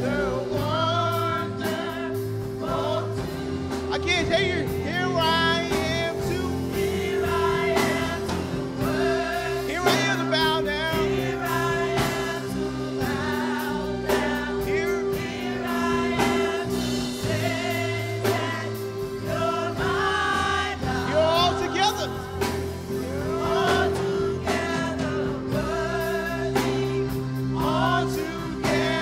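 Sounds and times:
band accompaniment: 0.0s - 29.0s
bass line: 0.0s - 29.0s
choir singing gospel: 0.0s - 29.0s.

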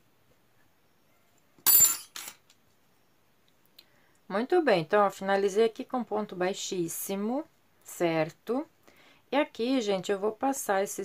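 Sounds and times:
metal hook clinking on table: 1.6s - 2.4s.

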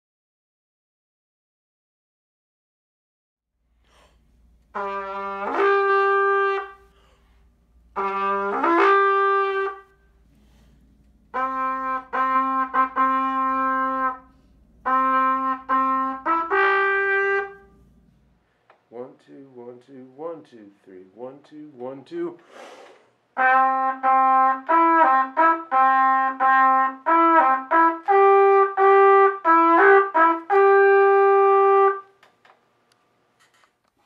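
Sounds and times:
horn call: 4.6s - 7.3s, 7.9s - 18.0s, 23.4s - 32.2s.

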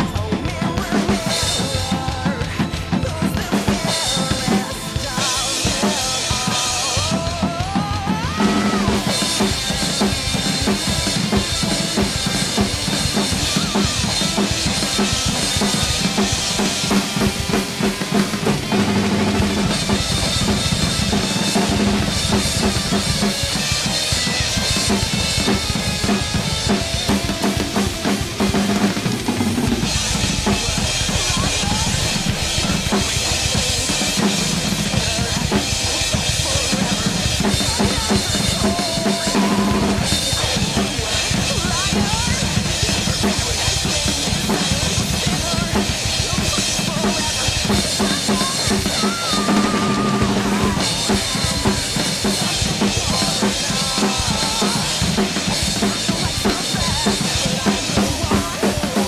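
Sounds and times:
rock drum kit playing: 0.0s - 59.0s.

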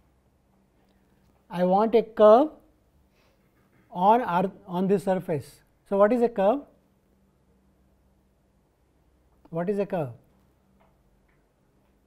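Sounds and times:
faint steady hum: 0.0s - 12.0s
person speaking: 1.2s - 2.7s, 3.8s - 6.8s, 9.4s - 10.4s.

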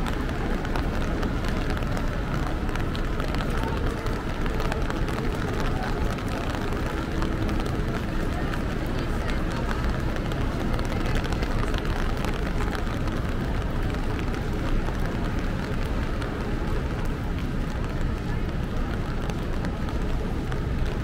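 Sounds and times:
low rumble of traffic: 0.0s - 21.0s
raindrops pattering: 0.0s - 21.0s.

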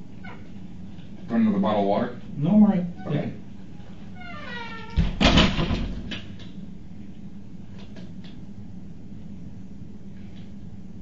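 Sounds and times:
door squeak: 0.2s - 0.5s, 3.0s - 3.4s, 4.1s - 5.6s
door thud closing: 4.9s - 6.2s.

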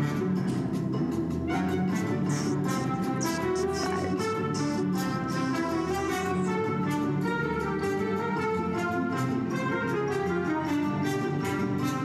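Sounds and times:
orchestral music: 1.5s - 12.0s.

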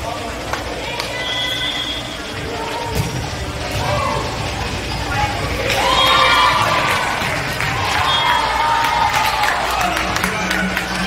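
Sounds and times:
spectator chatter: 0.0s - 11.0s.

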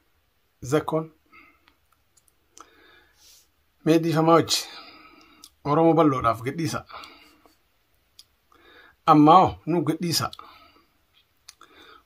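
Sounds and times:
man speaking: 0.6s - 1.2s, 3.8s - 7.1s, 9.0s - 10.4s
soft breath: 2.6s - 3.6s, 8.5s - 9.0s, 10.4s - 12.0s
faint mouth clicks: 11.4s - 11.7s.

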